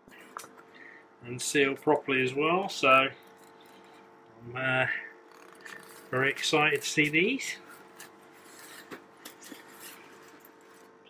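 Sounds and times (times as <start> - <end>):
handling rubbing and scratching: 2.9 - 4.2, 5.2 - 11.0.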